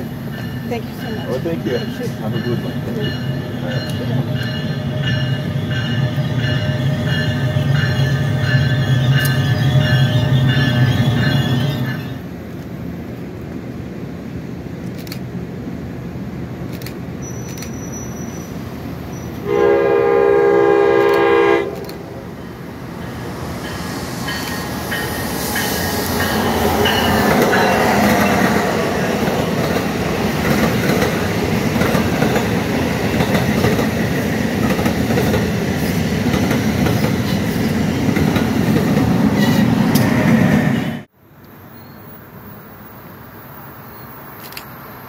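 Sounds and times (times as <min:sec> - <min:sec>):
train rumble: 0:00.0 - 0:41.2
train horn blast: 0:19.4 - 0:22.1
train wheels clattering: 0:23.6 - 0:40.3.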